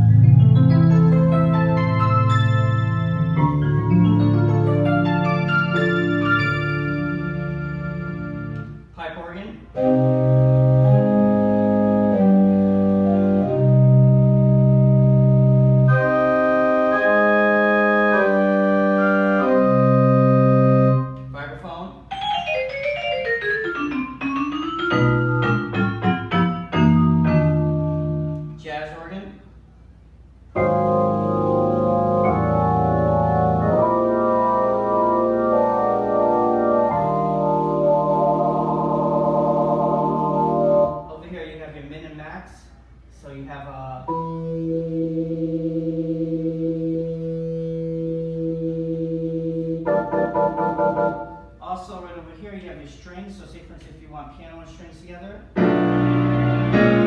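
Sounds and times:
organ chords and runs: 0.0 - 8.9, 9.8 - 21.2, 22.1 - 28.6, 30.5 - 41.1, 44.1 - 51.6, 55.6 - 57.0.

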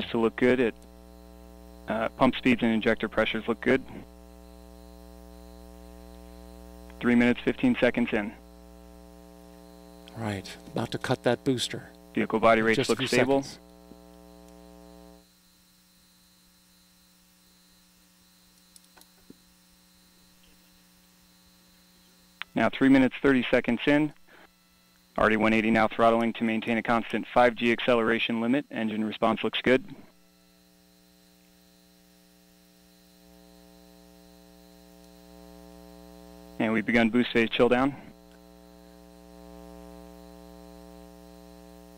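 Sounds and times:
faint steady hum: 0.0 - 41.9
faint clicks: 18.5 - 19.4.

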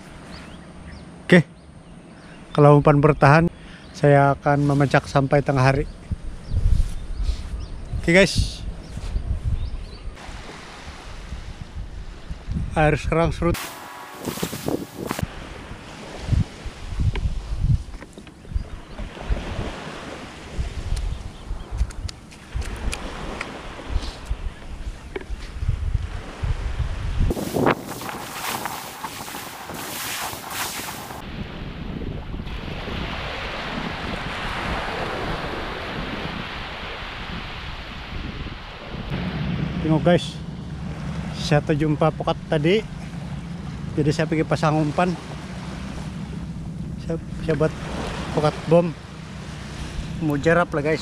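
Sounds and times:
wind buffeting microphone: 5.9 - 43.9
small waves breaking: 10.2 - 12.5, 13.6 - 17.5, 18.8 - 20.9, 22.3 - 24.2, 27.3 - 31.6, 32.5 - 39.8, 42.8 - 51.0.

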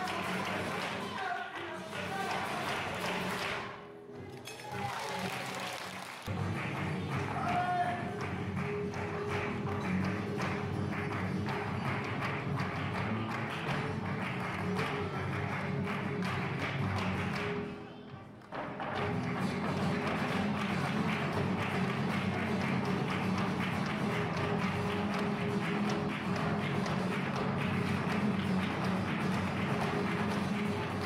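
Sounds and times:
rapid hand clapping: 0.0 - 3.7, 4.8 - 17.7, 18.7 - 31.0
acoustic guitar: 0.0 - 5.6, 6.2 - 31.0.

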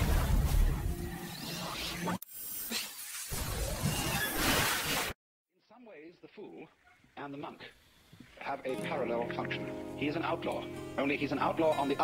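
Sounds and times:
music: 8.7 - 12.0.

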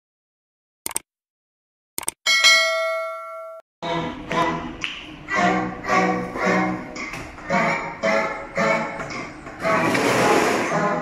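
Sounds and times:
notification bell ding: 2.3 - 3.6
music: 3.8 - 11.0.

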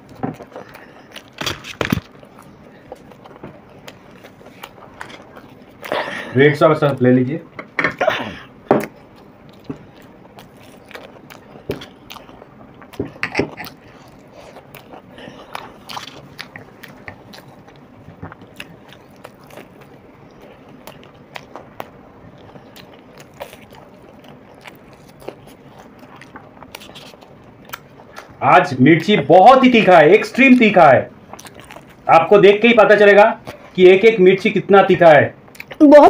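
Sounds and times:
biting and chewing: 0.0 - 7.8, 8.4 - 34.2, 35.4 - 35.8.

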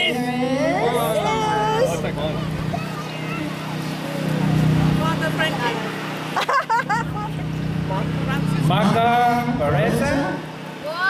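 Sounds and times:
voices: 0.0 - 11.0
low hum: 0.1 - 11.0.

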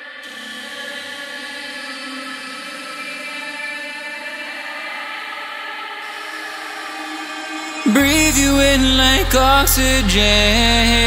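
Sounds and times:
sustained synthesizer pad chord: 6.0 - 11.0.

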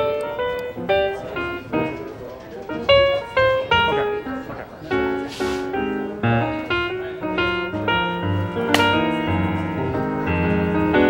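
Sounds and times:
piano-like notes: 0.0 - 11.0
bass notes: 5.8 - 11.0.

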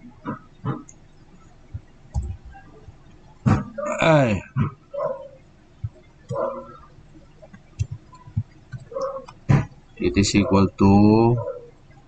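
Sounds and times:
weak short vocal sound: 3.8 - 4.5.

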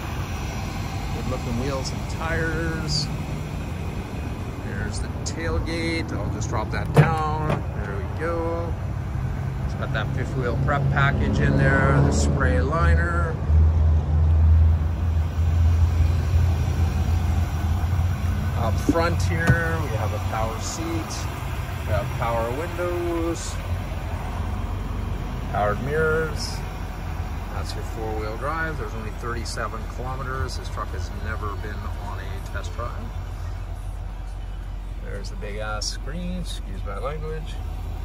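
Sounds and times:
diesel truck engine idling: 0.0 - 38.0.

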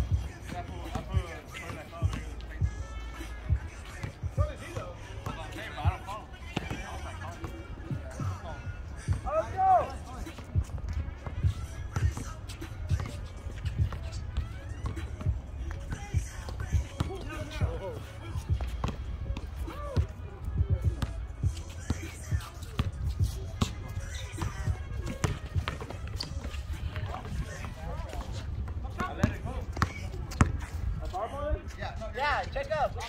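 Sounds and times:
players' voices: 0.0 - 33.0
basketball bouncing on concrete: 0.1 - 2.8, 3.5 - 8.3, 10.2 - 30.8.

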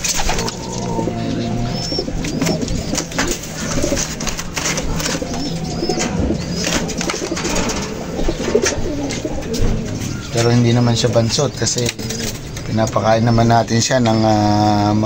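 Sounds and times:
clicks and rustling: 0.0 - 13.0
pigeons cooing: 0.0 - 15.0.

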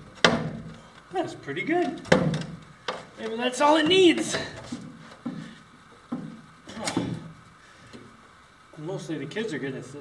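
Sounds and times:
chair knocking and creaking: 0.0 - 0.9, 1.8 - 7.4.

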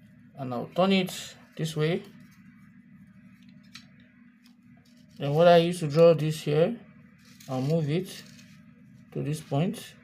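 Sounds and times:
plastic sliding across paper: 7.2 - 9.0.

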